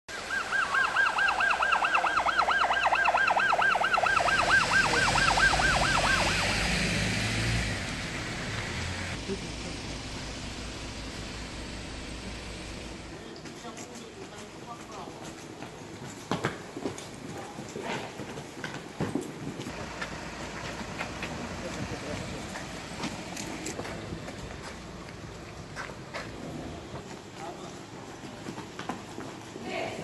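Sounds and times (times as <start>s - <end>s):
police siren yelping: 0.1s - 6.8s
vehicle engines: 0.2s - 16.0s, 19.5s - 30.0s
tyres hissing on wet road: 4.4s - 13.1s.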